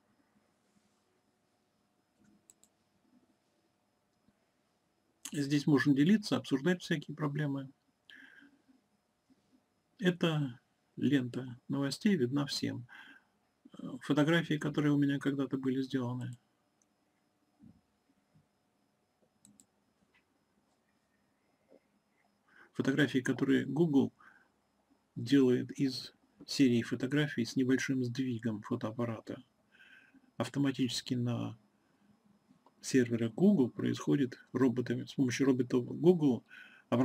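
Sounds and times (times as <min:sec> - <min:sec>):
faint computer mouse clicks: 0:02.2 - 0:02.8, 0:19.2 - 0:20.3.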